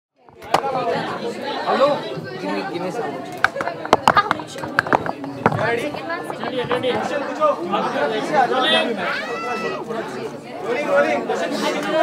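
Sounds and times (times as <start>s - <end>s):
several people talking: 0.2s - 12.0s.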